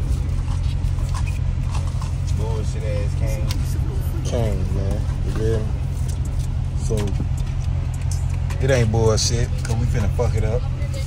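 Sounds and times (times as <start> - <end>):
car engine rumble inside cabin: 0.0 - 11.0
man speaking: 2.3 - 5.8.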